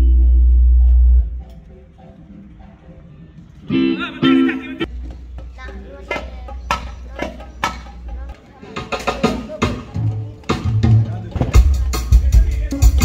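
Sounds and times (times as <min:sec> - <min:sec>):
deep low drone: 0:00.0 - 0:01.5
electric guitar through speakers: 0:00.0 - 0:04.9.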